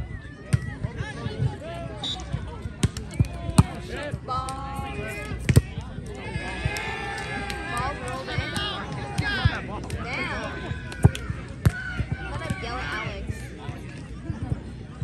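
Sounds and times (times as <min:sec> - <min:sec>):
voices and shouts of people: 0:00.0 - 0:15.0
volleyball hand slaps: 0:02.8 - 0:03.8, 0:05.2 - 0:10.1, 0:10.9 - 0:11.8.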